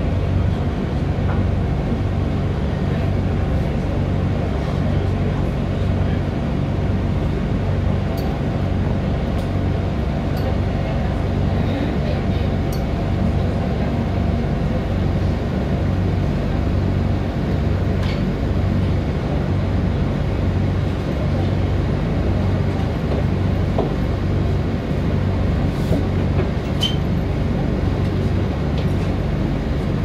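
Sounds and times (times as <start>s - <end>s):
funicular car rumbling on track: 0.0s - 30.0s.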